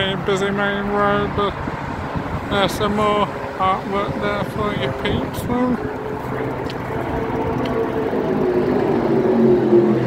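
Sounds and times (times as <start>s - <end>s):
busy road traffic: 0.0s - 10.0s
passing vehicle engine: 0.0s - 10.0s.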